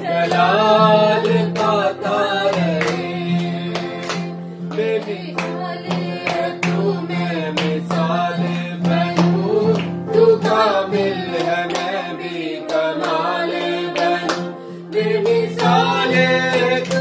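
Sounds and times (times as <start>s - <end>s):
acoustic guitar strumming: 0.0s - 17.0s
person singing worship song: 0.0s - 17.0s.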